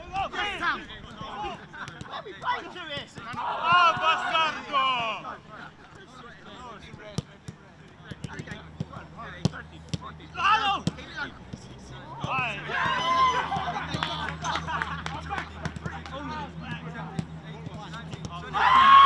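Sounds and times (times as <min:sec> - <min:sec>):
players shouting: 0:00.0 - 0:06.8, 0:08.3 - 0:19.0
footballs being kicked: 0:01.1 - 0:04.4, 0:05.8 - 0:10.2, 0:10.8 - 0:14.5, 0:15.2 - 0:19.0.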